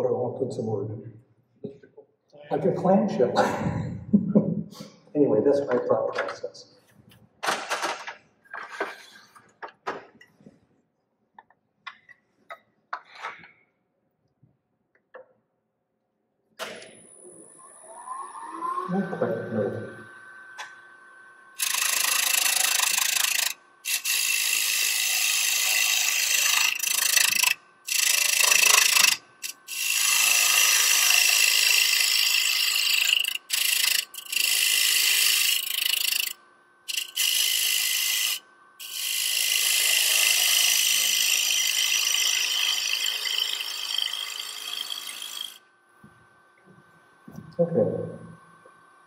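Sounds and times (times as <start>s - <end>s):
lathe tool shaving wood: 16.9s - 45.6s.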